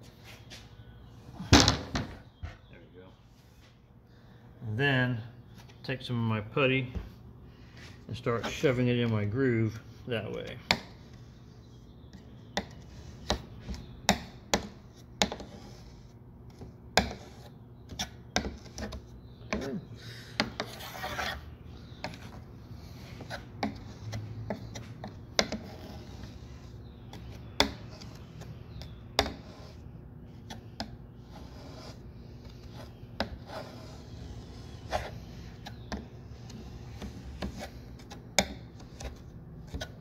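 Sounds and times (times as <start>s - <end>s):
putty knife scraping wood: 20.4s - 40.0s.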